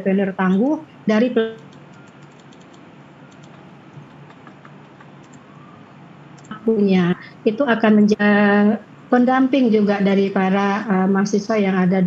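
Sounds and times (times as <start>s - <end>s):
steady low hum: 0.0s - 12.0s
keyboard typing clicks: 1.5s - 5.5s.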